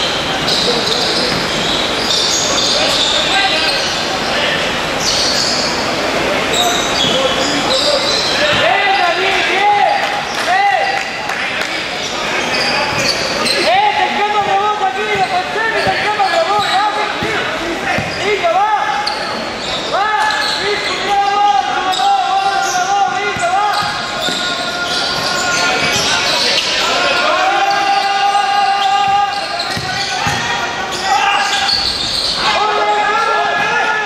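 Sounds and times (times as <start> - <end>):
sneakers squeaking on court: 0.0 - 4.1, 6.5 - 9.1, 12.0 - 27.0, 27.7 - 32.6
voices calling out: 0.0 - 34.0
basketball bouncing: 1.2 - 1.7, 14.4 - 18.3, 23.3 - 26.3, 29.0 - 30.5.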